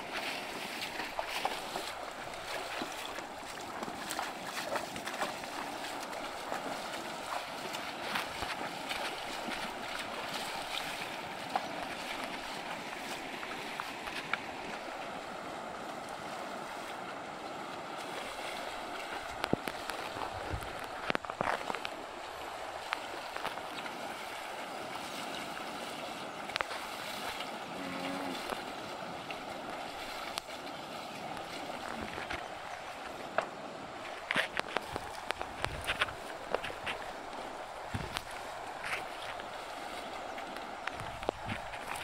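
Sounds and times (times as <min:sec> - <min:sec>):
hooves splashing and knocking: 0:00.0 - 0:42.0
river water running over stones: 0:00.0 - 0:42.0.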